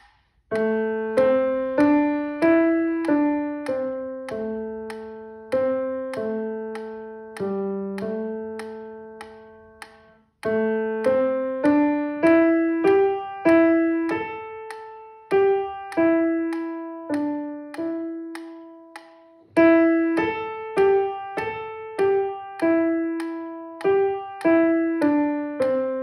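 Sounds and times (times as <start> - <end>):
grand piano playing slow piece: 0.0 - 26.0.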